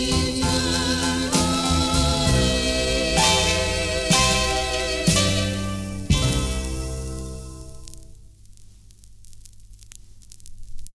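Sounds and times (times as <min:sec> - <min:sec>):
vinyl record hiss: 0:00.0 - 0:11.0
vinyl crackles and clicks: 0:05.0 - 0:11.0.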